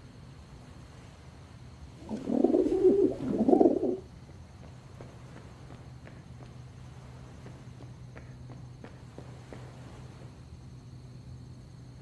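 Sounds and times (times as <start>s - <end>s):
bird cooing: 2.0s - 4.1s.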